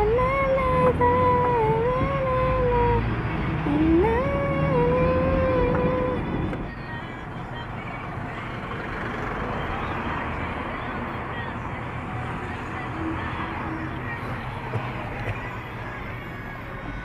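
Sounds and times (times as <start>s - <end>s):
pop song with woman singing: 0.0s - 8.9s, 9.5s - 17.0s
car road noise: 0.0s - 17.0s.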